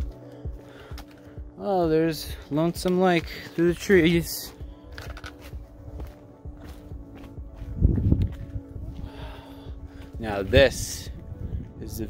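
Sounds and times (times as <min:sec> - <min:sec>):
footsteps on rocky trail: 0:00.0 - 0:11.9
background music steady notes: 0:00.0 - 0:12.0.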